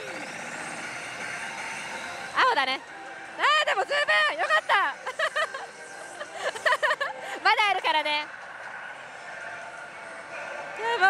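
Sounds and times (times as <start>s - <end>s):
slot machine noise: 0.0s - 11.0s.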